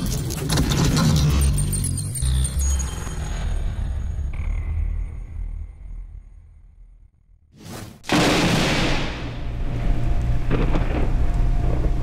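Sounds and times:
deep low rumble: 9.3s - 12.0s.

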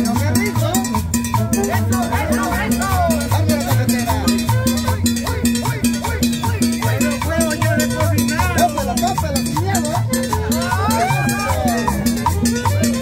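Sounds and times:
latin dance music live band: 0.0s - 13.0s.

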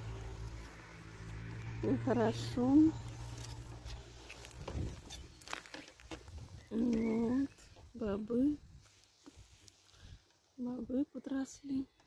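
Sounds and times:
footsteps on dry ground: 3.1s - 7.8s.

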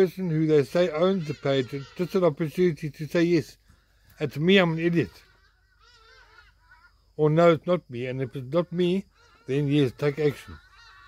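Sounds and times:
faint bird calls: 0.0s - 11.0s.

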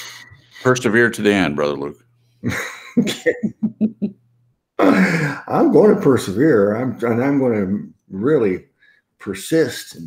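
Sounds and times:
person laughing: 2.4s - 4.2s, 4.8s - 5.5s.

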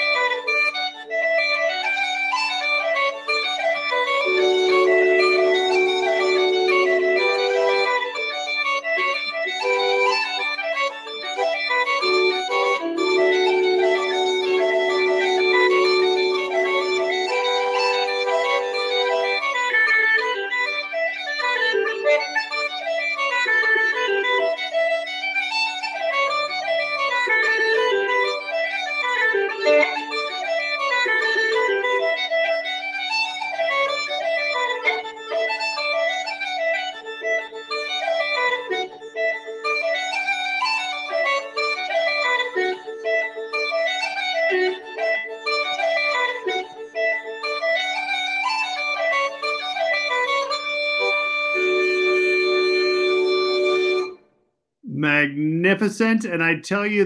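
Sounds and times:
bagpipe chanter melody: 0.0s - 54.2s
bagpipe drone: 0.0s - 54.2s.

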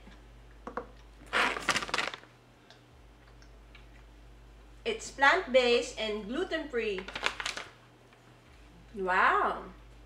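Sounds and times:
plastic packaging crinkling: 1.3s - 2.3s, 7.0s - 7.8s.

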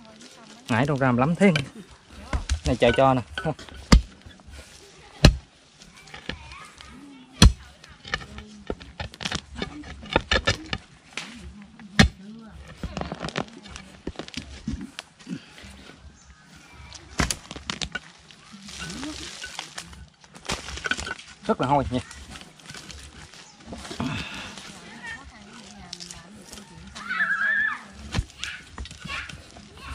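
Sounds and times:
digging tool striking stony soil: 0.7s - 6.6s, 7.4s - 15.1s, 17.0s - 24.6s, 27.9s - 29.9s.

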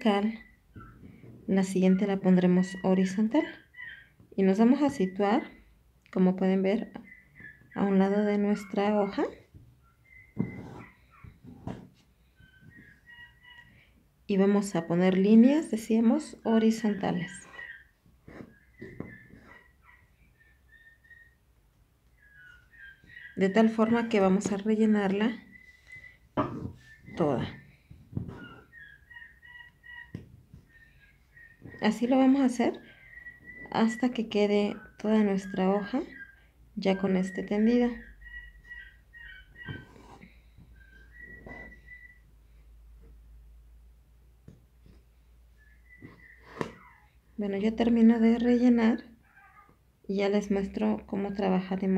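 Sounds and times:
faint whistling: 0.3s - 1.2s, 7.0s - 7.8s, 9.8s - 11.4s, 17.3s - 21.4s, 25.2s - 29.1s, 30.7s - 32.1s, 32.7s - 42.6s, 45.5s - 47.1s
handling noises: 9.1s - 12.9s
high whistle-like tones: 25.4s - 27.7s, 32.8s - 36.4s, 39.6s - 42.3s, 45.6s - 46.9s.

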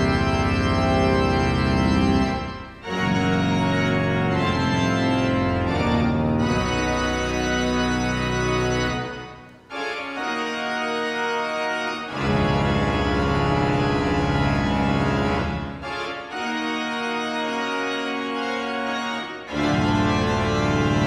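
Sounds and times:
deep organ pedal bass: 0.0s - 10.5s, 11.1s - 16.8s, 17.4s - 21.0s
pipe organ chords: 0.0s - 21.0s.

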